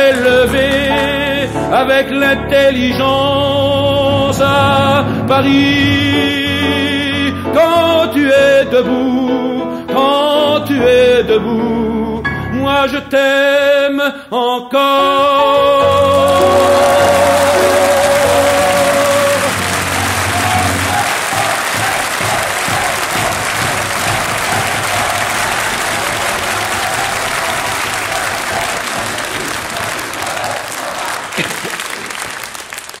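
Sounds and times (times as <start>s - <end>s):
audience applauding: 0.0s - 1.6s, 15.9s - 33.0s
held musical chord: 15.9s - 21.2s.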